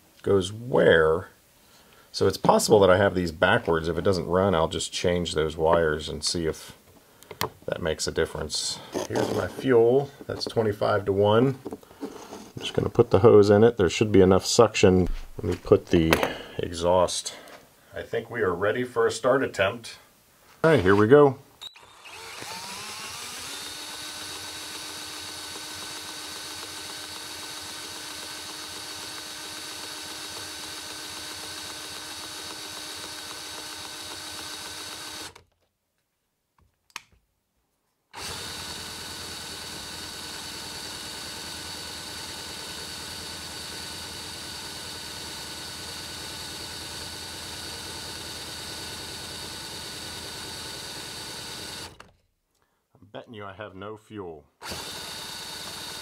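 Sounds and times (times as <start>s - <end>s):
cordless drill spinning engine: 8.8s - 10.5s, 21.6s - 35.4s, 38.2s - 52.1s, 54.6s - 56.0s
click: 36.6s - 37.2s.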